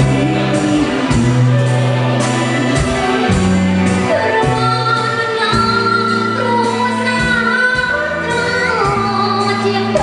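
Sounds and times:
drums: 0.0 - 10.0
electric bass: 0.0 - 10.0
live band: 0.0 - 10.0.

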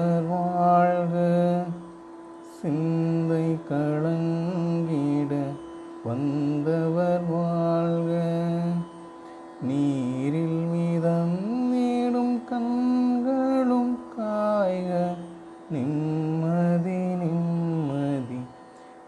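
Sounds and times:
person singing devotional song: 0.0 - 19.0
steady drone: 0.0 - 19.0.

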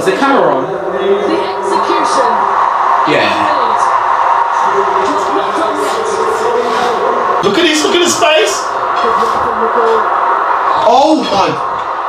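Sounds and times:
commentator talking: 0.0 - 4.0, 4.6 - 10.1
stadium crowd noise: 0.0 - 12.0.

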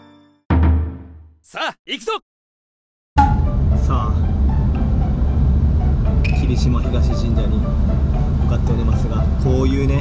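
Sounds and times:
car road and engine noise: 3.2 - 10.0.

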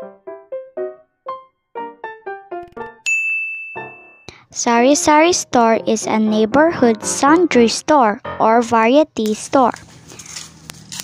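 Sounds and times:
piano music: 0.0 - 9.2
bright bell-like ding: 3.0 - 4.4.

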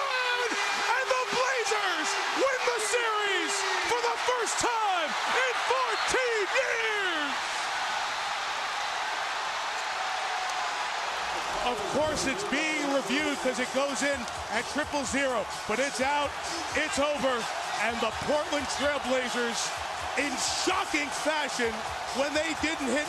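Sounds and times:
arena crowd screaming and cheering: 0.0 - 23.0.

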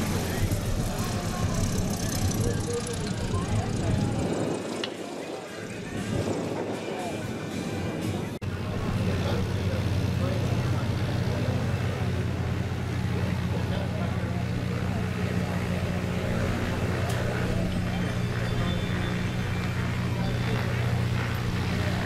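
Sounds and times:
plane engine during takeoff: 0.0 - 22.0
propeller engine drone: 0.0 - 22.0.

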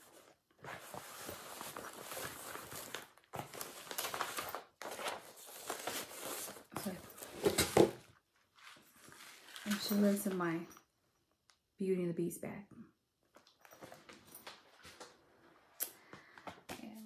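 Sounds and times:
fabric and packaging rustling: 0.0 - 10.8.

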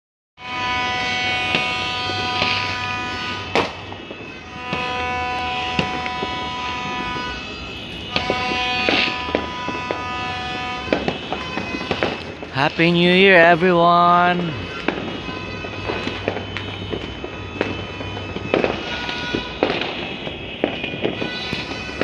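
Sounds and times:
fireworks bangs and crackles: 0.4 - 22.0.

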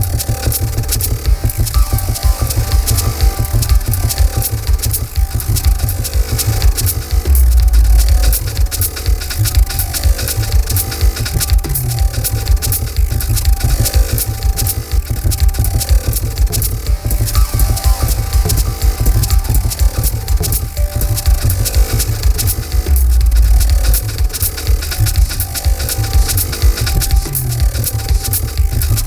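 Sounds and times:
experimental electronic music: 0.0 - 29.0.

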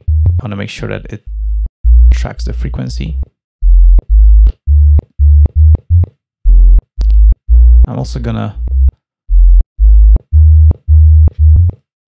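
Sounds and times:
synth sub-bass notes: 0.0 - 11.8.

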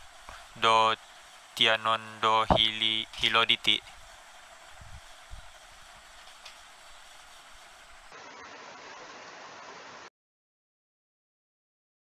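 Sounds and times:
room tone hiss: 0.0 - 10.1.

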